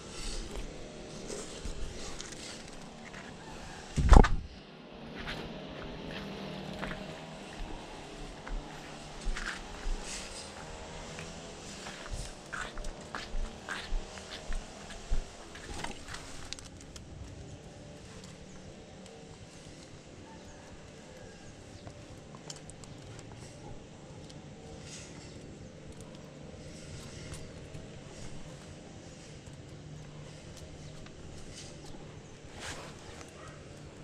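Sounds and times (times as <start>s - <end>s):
low outdoor background: 0.0s - 34.0s
sharp knocks and steps: 2.6s - 4.5s, 5.2s - 16.2s
cable ticking and rustling on wall: 14.2s - 17.5s.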